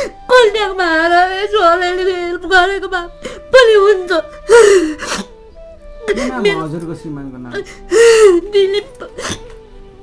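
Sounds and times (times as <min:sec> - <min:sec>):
woman sobbing: 0:01.3 - 0:05.4, 0:06.0 - 0:06.7, 0:07.5 - 0:09.6.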